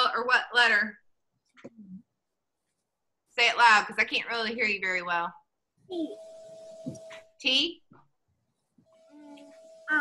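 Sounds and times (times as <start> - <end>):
faint steady tone and hum: 5.5 - 10.0
child speaking: 5.9 - 6.2, 9.1 - 10.0.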